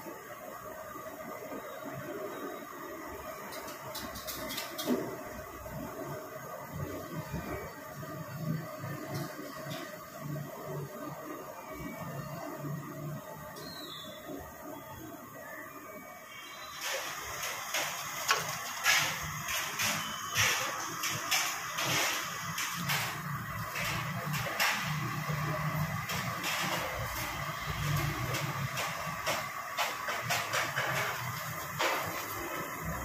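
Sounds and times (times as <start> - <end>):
food sizzling in deep-frying oil: 16.3 - 30.1
skimmer moving through oil: 16.3 - 33.0.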